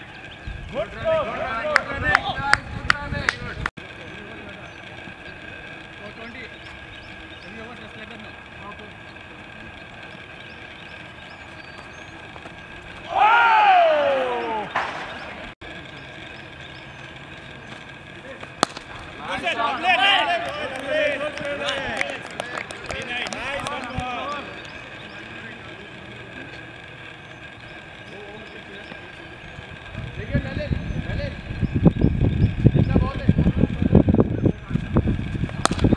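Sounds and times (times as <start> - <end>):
outdoor background noise: 0.0 - 35.9
faint distant voices: 0.7 - 35.1
man shouting: 13.0 - 14.7
sharp crack: 14.6 - 15.5, 18.3 - 19.1, 35.5 - 35.9.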